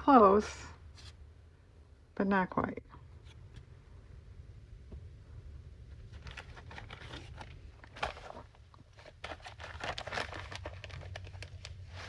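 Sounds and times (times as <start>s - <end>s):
paper and plastic bag rustling: 6.0s - 12.0s.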